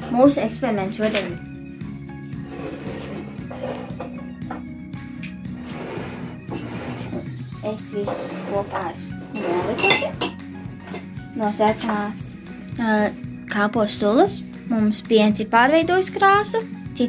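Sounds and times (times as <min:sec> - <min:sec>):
background music: 0:00.0 - 0:17.0
spoon clinking against glass: 0:09.3 - 0:11.0.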